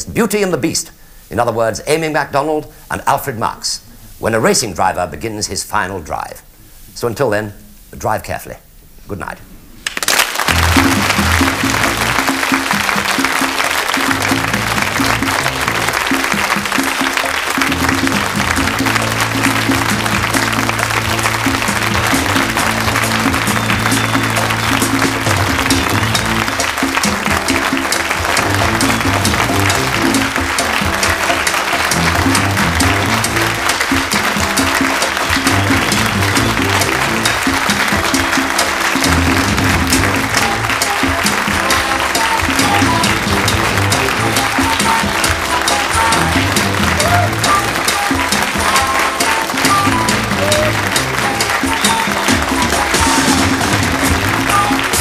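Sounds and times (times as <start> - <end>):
audience applauding: 9.8 - 55.0
theme music: 10.4 - 55.0.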